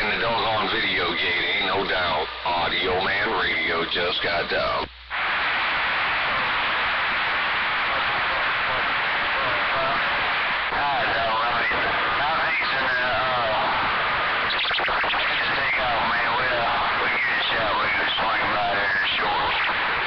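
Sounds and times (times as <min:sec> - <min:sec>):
garbled radio voices: 0:00.0 - 0:20.0
radio static hiss: 0:00.0 - 0:20.0.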